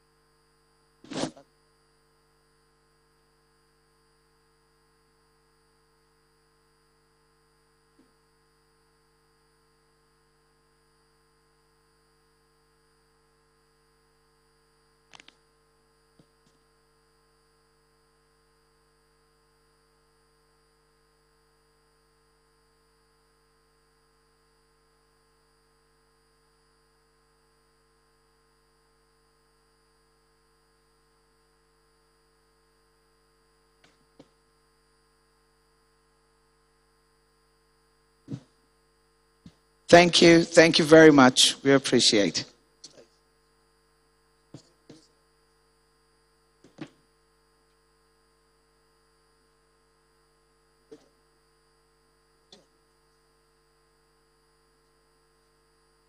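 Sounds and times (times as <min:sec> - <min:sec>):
faint electrical hum: 0:00.0 - 0:56.0.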